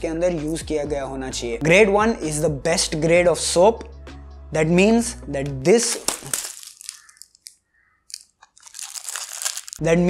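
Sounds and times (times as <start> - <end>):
cardboard box crinkling: 6.0 - 7.5, 8.1 - 9.8.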